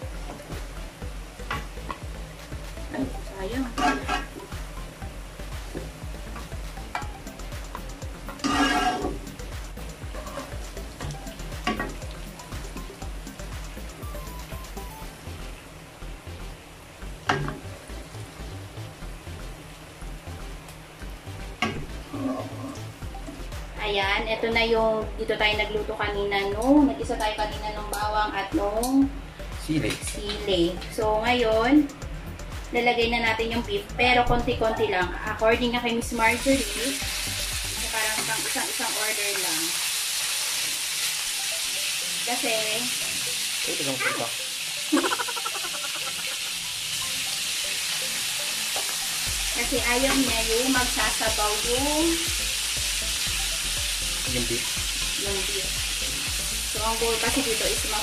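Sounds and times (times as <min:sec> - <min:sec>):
garlic sizzling in hot oil: 0:00.0 - 0:23.8, 0:36.1 - 0:58.0
spatula stirring in pan: 0:08.3 - 0:09.3.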